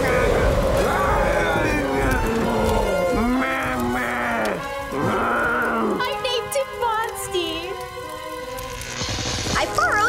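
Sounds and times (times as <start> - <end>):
long voice-like moan: 0.0 - 6.0
music: 0.0 - 10.0.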